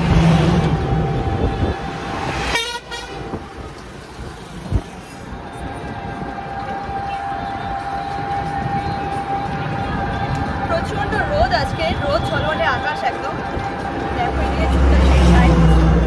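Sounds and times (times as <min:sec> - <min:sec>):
road and wind noise: 0:00.0 - 0:16.0
horn toot: 0:02.4 - 0:03.4.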